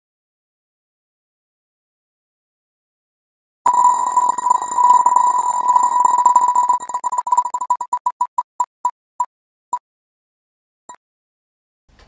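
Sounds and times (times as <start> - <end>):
electronic ticking wheel: 3.7 - 8.9.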